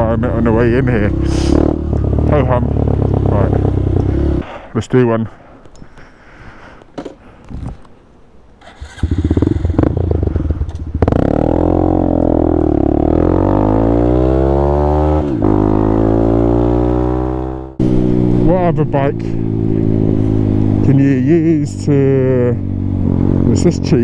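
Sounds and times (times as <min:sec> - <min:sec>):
motorcycle engine accelerating: 0:00.0 - 0:04.4, 0:08.6 - 0:24.0.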